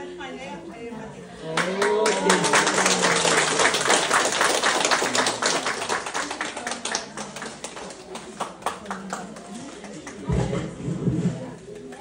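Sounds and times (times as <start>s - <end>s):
people clapping: 1.4s - 10.5s.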